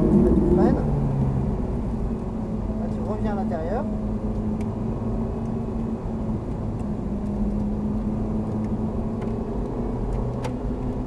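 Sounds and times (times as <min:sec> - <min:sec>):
car engine heard from cabin: 0:00.0 - 0:11.0.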